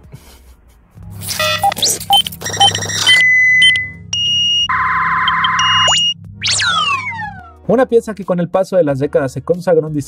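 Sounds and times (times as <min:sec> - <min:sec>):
low bass hum: 0:01.1 - 0:07.5
glitchy synth beeps: 0:01.2 - 0:07.4
held high tone: 0:02.5 - 0:07.5.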